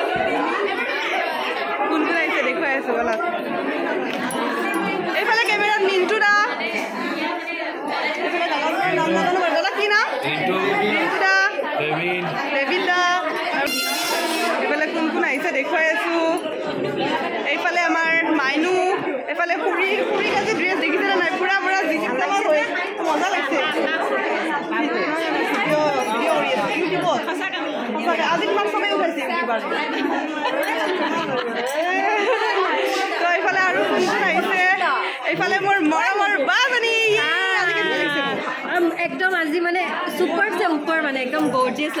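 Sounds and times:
people chatting: 0:00.0 - 0:42.0
women talking over one another: 0:33.2 - 0:42.0.

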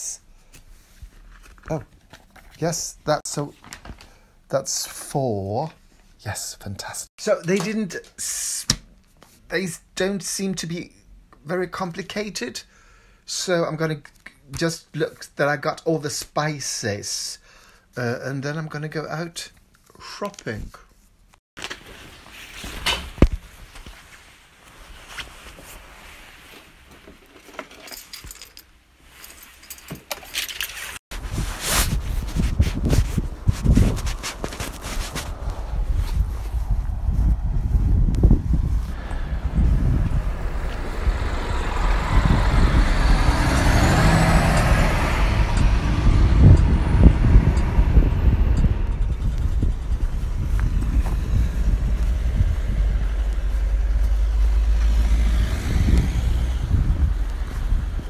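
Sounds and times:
fabric rustling: 0:21.6 - 0:27.5, 0:30.7 - 0:37.2
wind rumbling on microphone: 0:31.2 - 0:58.0
car passing on wet road: 0:39.0 - 0:48.2, 0:51.3 - 0:58.0.

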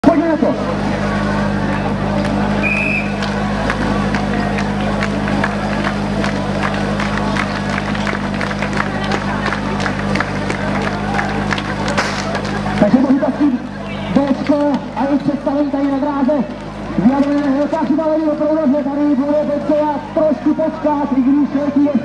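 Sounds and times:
crowd noise: 0:00.0 - 0:22.0
pump engine idling: 0:00.1 - 0:21.0.

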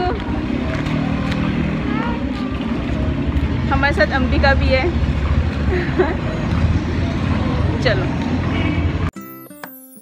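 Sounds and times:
engine low rumble: 0:00.0 - 0:09.1.

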